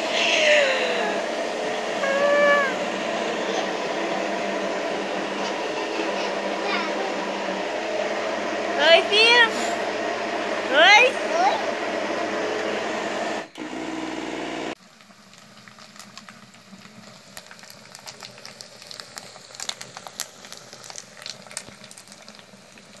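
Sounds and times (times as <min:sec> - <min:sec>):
short hum: 0:02.0 - 0:03.8
child calling out: 0:02.0 - 0:03.9
firewood crackling in a stove: 0:14.8 - 0:23.0.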